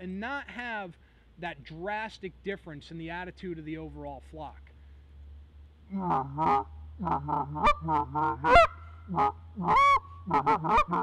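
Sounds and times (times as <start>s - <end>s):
goose call clucks: 5.9s - 11.0s
goose call murmur notes: 5.9s - 11.0s.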